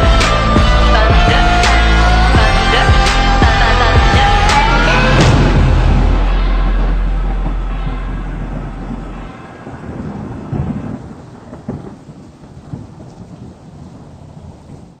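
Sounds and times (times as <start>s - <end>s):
deep held low tone: 0.0s - 10.8s
deep booms: 0.0s - 12.0s
low rumbling noise: 0.0s - 15.0s.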